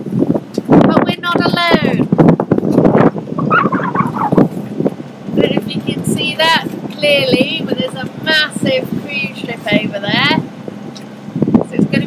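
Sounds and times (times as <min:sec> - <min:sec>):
wind buffeting microphone: 0:00.0 - 0:12.0
person's voice: 0:00.9 - 0:02.1, 0:05.4 - 0:10.4, 0:11.7 - 0:12.0.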